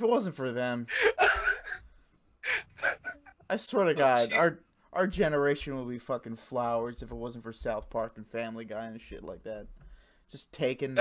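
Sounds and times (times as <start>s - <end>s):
man gasping: 1.8s - 3.0s
short breaths: 9.8s - 10.3s.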